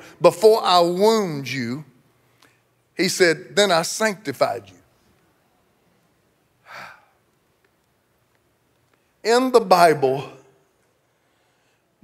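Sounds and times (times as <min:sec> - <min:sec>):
man's sharp intake of breath: 0:06.6 - 0:07.2.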